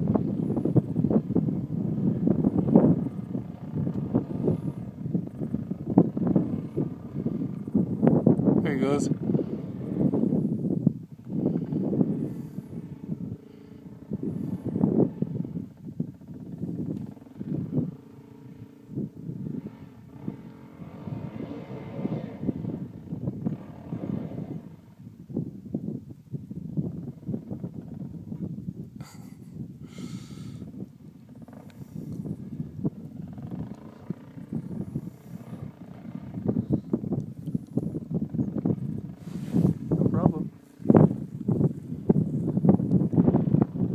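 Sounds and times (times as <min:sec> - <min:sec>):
dirt bike engine revving: 0:00.0 - 0:10.7, 0:11.3 - 0:25.0.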